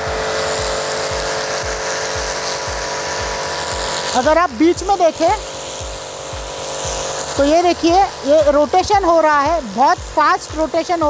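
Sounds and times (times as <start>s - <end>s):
low pulsing beneath hum: 0.0s - 11.0s
pressure washer motor hum: 0.0s - 11.0s
water jet hissing on paving: 0.0s - 11.0s.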